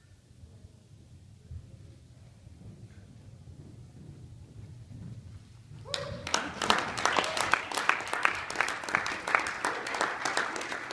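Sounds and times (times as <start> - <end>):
spectators clapping and applauding: 5.9 - 10.9.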